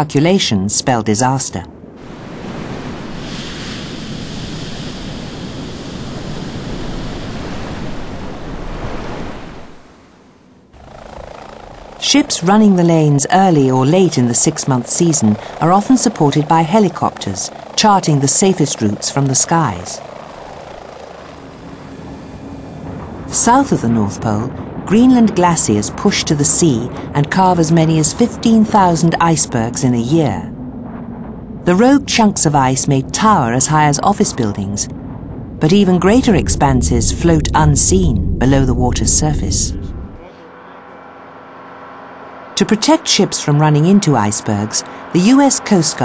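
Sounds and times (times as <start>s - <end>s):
helicopter rotor and engine: 10.7s - 46.0s.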